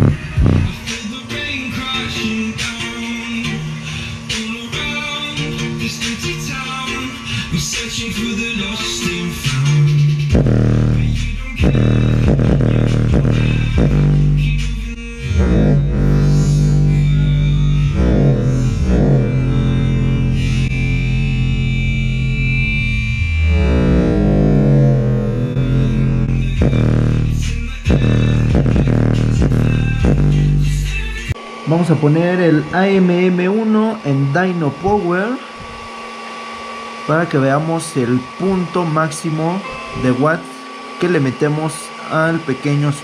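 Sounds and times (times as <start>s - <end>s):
bass-heavy music through subwoofer: 0.0s - 35.3s.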